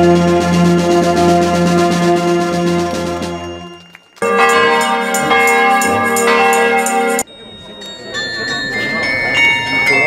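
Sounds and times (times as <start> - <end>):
carillon bells ringing: 2.3 - 10.0.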